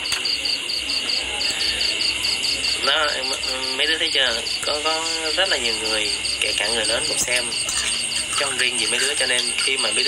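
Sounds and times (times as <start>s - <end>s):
cricket chirping: 0.0s - 10.0s.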